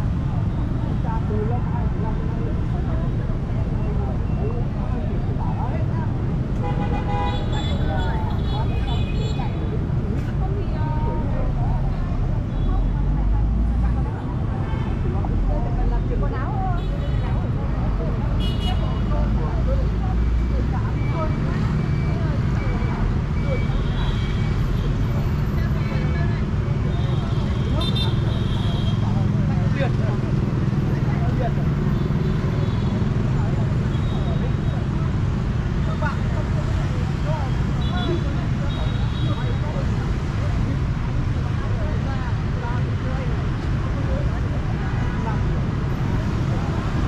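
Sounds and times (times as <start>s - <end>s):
people talking: 0.0s - 47.0s
traffic engine rumble: 0.0s - 47.0s.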